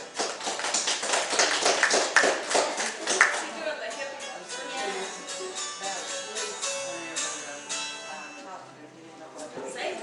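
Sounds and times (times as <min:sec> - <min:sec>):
people clapping: 0:00.0 - 0:03.6.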